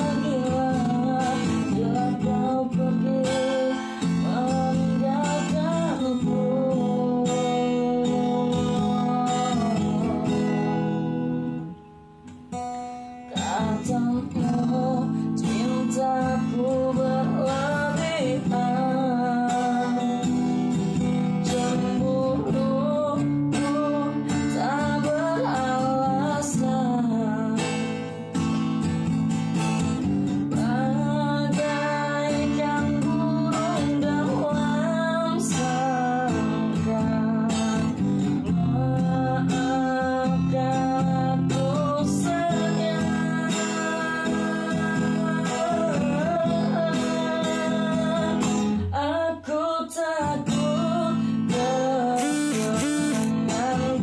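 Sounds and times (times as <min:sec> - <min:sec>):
man singing: 0:00.0 - 0:10.9, 0:13.3 - 0:20.4, 0:21.4 - 0:27.7, 0:30.6 - 0:54.0
acoustic guitar strumming: 0:00.0 - 0:54.0.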